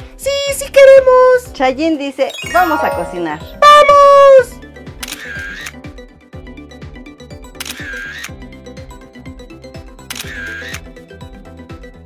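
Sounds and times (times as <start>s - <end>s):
upbeat intro music: 2.3s - 4.5s.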